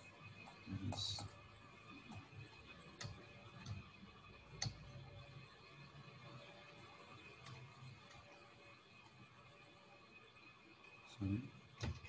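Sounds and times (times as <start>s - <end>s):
faint low room hum: 0.0s - 12.0s
computer mouse clicks: 3.0s - 3.8s, 4.5s - 5.0s.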